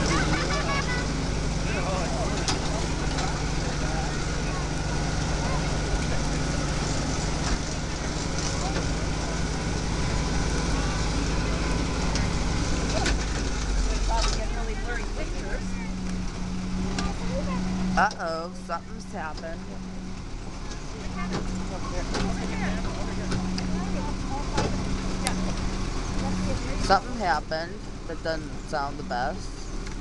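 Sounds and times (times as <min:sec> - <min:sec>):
tractor engine running: 0:00.0 - 0:30.0.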